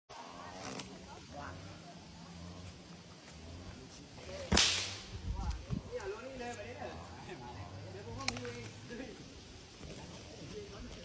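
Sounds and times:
faint voices: 0:00.1 - 0:11.0
loud sharp crack: 0:04.5 - 0:05.1.

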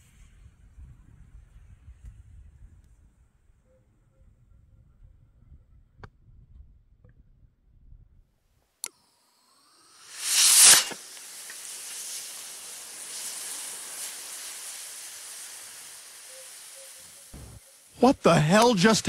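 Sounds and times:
quiet steady hiss: 0:08.6 - 0:19.0
rocket motor rushing hiss: 0:09.2 - 0:19.0
rocket motor blast: 0:09.4 - 0:18.9.

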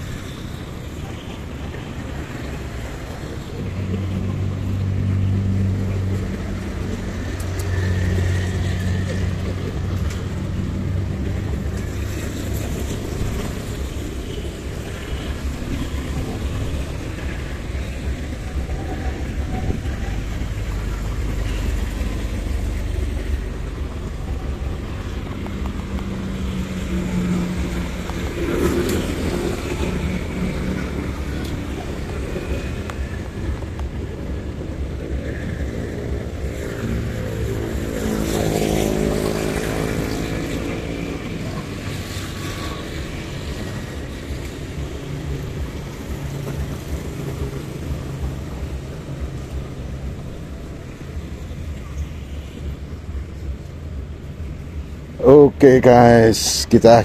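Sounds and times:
city street traffic: 0:00.0 - 0:57.0
loud engine passing close: 0:03.6 - 0:49.8.

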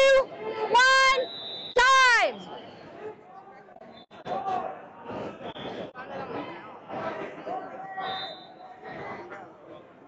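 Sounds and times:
gym background noise: 0:00.0 - 0:10.0.

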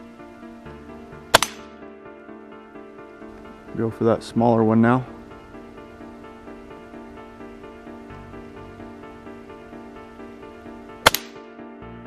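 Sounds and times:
background music: 0:00.0 - 0:12.0
rifle shot: 0:01.3 - 0:01.8, 0:11.0 - 0:11.5.

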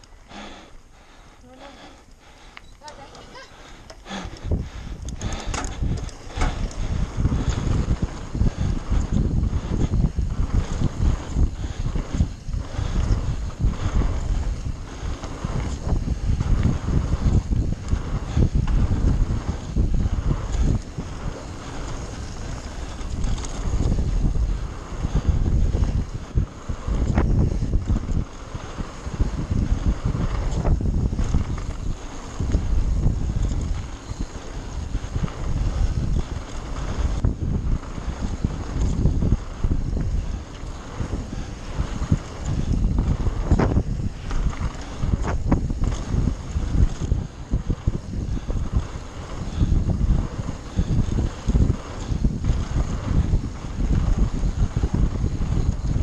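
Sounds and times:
bike tyres rumbling and rattling: 0:00.0 - 0:56.0
wind buffeting microphone: 0:00.0 - 0:56.0
bike hitting bumps: 0:03.9 - 0:56.0.

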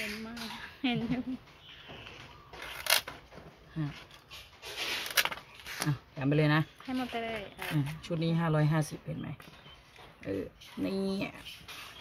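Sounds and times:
blade scraping dry leaves: 0:04.3 - 0:06.0.

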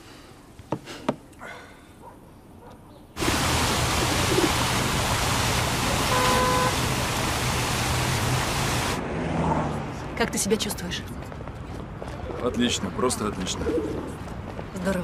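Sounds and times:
street traffic noise: 0:03.2 - 0:15.0.

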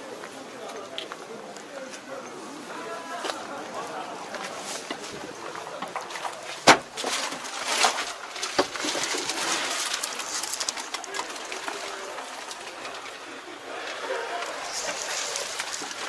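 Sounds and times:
background murmur: 0:00.0 - 0:16.0
clicks and rustles: 0:03.3 - 0:16.0.

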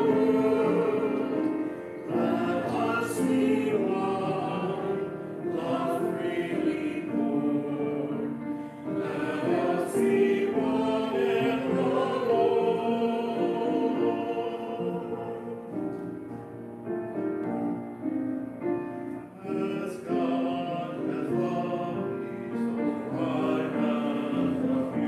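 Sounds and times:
choir singing: 0:00.0 - 0:16.3, 0:19.1 - 0:25.0.

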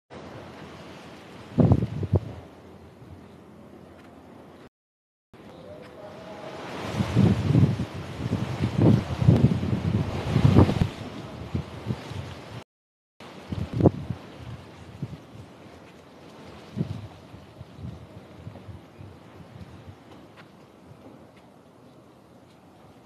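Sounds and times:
wind buffeting microphone: 0:00.2 - 0:04.6, 0:05.4 - 0:12.6, 0:13.2 - 0:23.0.

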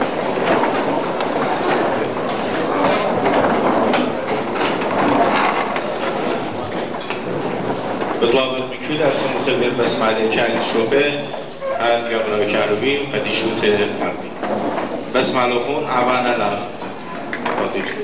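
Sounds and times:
many people talking: 0:00.0 - 0:18.0
people moving about: 0:00.0 - 0:18.0
scattered clicks and knocks: 0:00.0 - 0:18.0.

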